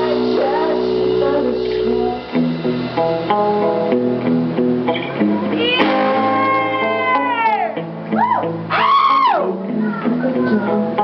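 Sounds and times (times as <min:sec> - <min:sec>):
woman singing long note: 0:00.0 - 0:02.3
bass guitar: 0:00.0 - 0:11.0
electric guitar: 0:00.0 - 0:11.0.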